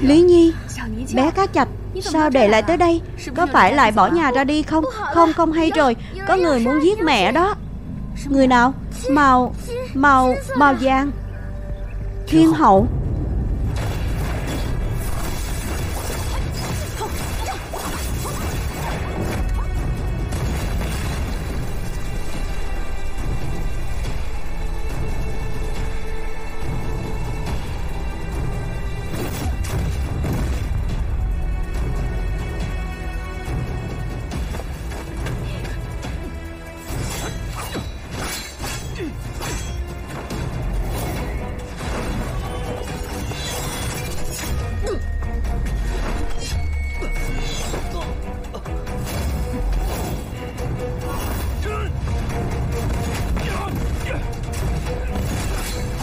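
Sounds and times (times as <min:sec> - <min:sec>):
heavy low rumble: 0:00.0 - 0:15.7
film score music: 0:00.0 - 0:56.0
magic energy blasts clashing: 0:13.7 - 0:19.6.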